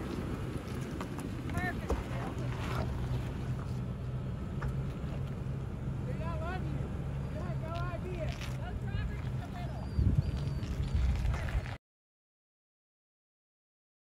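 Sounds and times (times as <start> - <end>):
engine running at low revs: 0.0 - 11.7.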